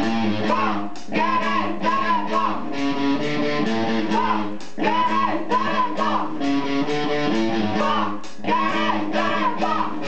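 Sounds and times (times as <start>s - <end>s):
drums: 0.0s - 10.0s
guitar riff: 0.0s - 10.0s.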